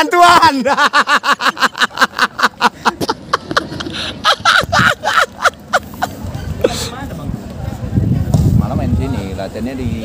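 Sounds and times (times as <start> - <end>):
person laughing: 0.4 - 6.8.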